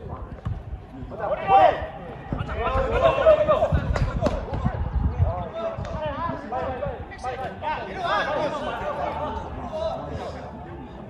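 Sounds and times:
voices shouting and calling out: 0.2 - 11.0.

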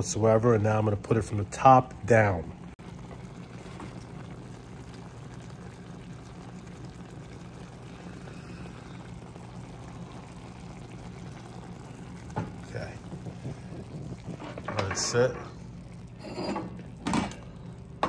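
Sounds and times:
broth bubbling in a pan: 0.0 - 18.0.

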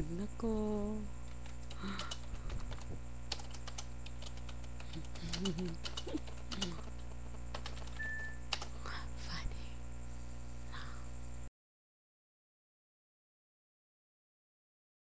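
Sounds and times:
steady low hum: 0.0 - 11.5
keyboard key clicks: 1.3 - 8.7.

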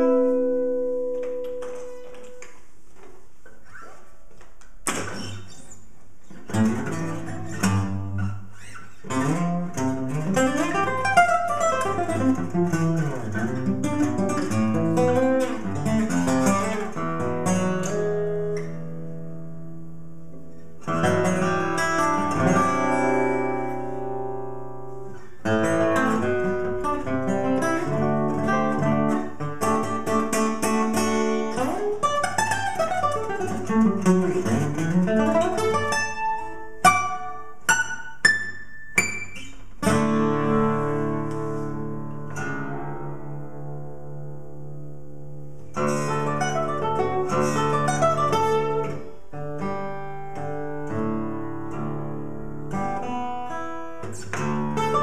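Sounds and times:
fingerstyle acoustic guitar: 0.0 - 55.0.

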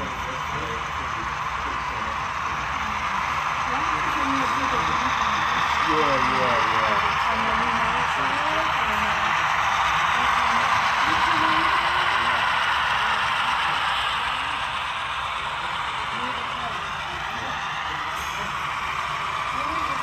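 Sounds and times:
background chatter of people: 0.0 - 20.0.

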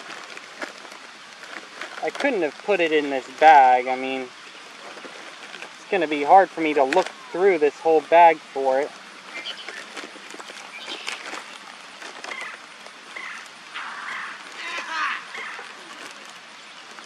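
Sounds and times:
small clicks of items: 0.0 - 3.6, 6.6 - 7.2, 8.9 - 17.0
bag rustling: 0.0 - 17.0.

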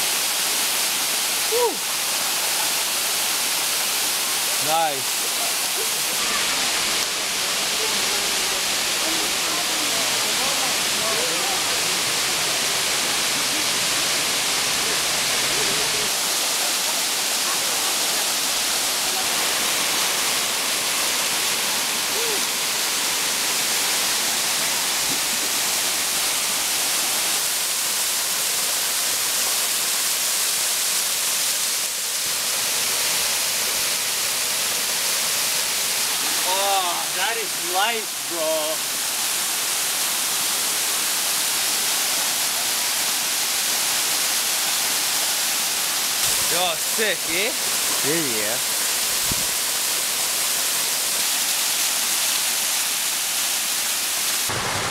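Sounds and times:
waterfall rushing onto rock: 0.0 - 54.9.

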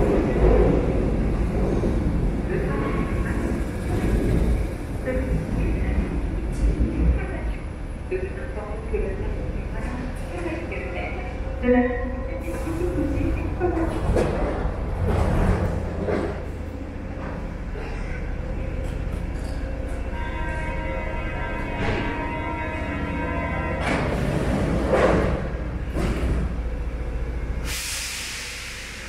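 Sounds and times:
train low rumble: 0.0 - 29.0
hiss of air: 27.6 - 29.0.

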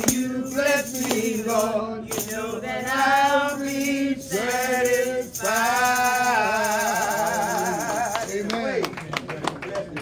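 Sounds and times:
man singing with vibrato: 0.0 - 8.5.

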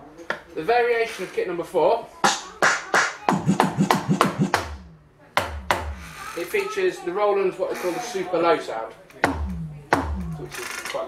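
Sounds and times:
deep bass boom: 3.3 - 6.0, 9.3 - 10.5
electronic drum hits: 3.3 - 6.0, 9.2 - 10.6.

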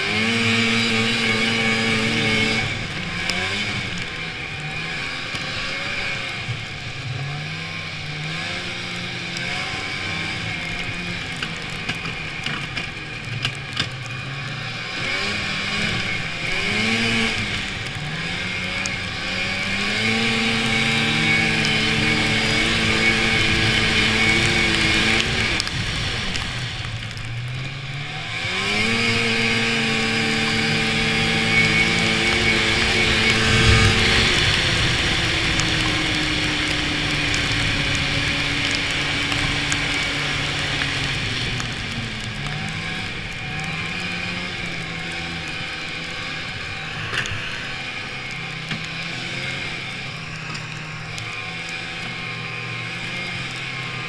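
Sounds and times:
snowmobile engine: 0.0 - 54.0.

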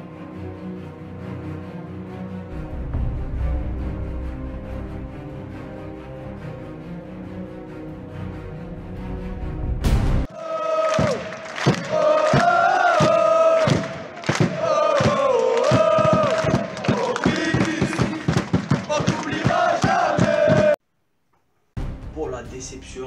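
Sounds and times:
football supporters chanting: 10.3 - 20.8
sharp rhythmic hits: 11.0 - 20.8.

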